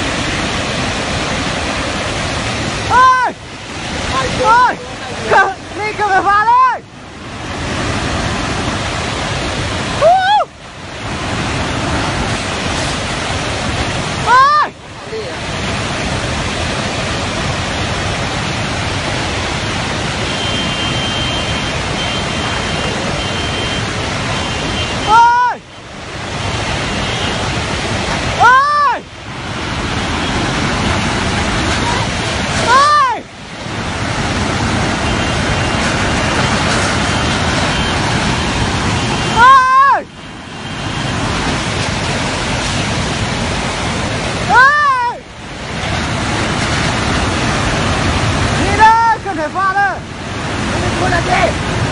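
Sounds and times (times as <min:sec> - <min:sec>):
rushing torrent: 0:00.0 - 0:51.9
loud cry rising and falling: 0:32.6 - 0:33.3.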